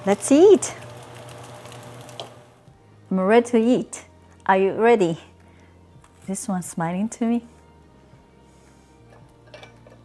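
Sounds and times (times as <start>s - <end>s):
dumplings sizzling in oil: 0.0s - 2.6s.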